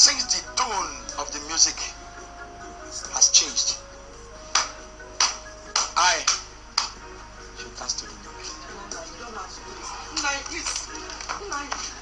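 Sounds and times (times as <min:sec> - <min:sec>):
man's voice: 0:00.0 - 0:04.0, 0:05.8 - 0:06.5, 0:07.4 - 0:11.1
background music with keyboard notes: 0:00.0 - 0:12.0.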